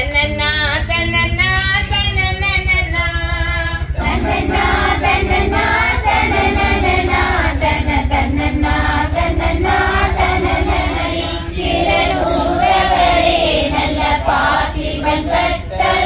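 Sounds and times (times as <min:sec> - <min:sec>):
group singing in unison: 0:02.9 - 0:16.0.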